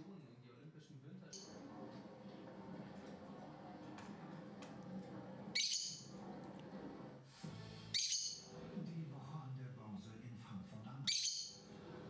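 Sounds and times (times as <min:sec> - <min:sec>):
lovebird shrill calls: 0:05.6 - 0:06.1, 0:08.0 - 0:08.5.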